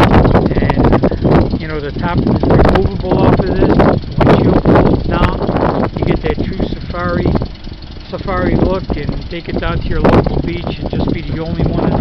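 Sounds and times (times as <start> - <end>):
steady low rumble: 0.0 - 12.0
man talking: 0.4 - 12.0.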